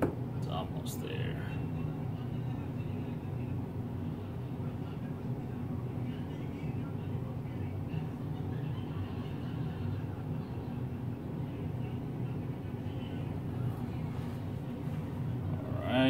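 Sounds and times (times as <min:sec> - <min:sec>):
low mechanical hum: 0:00.0 - 0:16.0.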